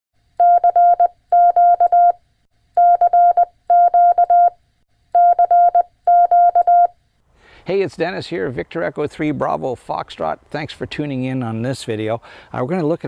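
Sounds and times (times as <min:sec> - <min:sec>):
morse code beeps: 0:00.4 - 0:02.2, 0:02.8 - 0:04.6, 0:05.2 - 0:06.9.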